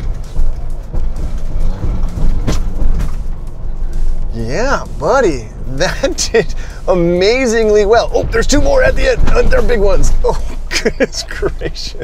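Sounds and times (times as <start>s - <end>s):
sharp knock: 0.0s - 3.4s
truck rumbling over bumps: 0.0s - 12.0s.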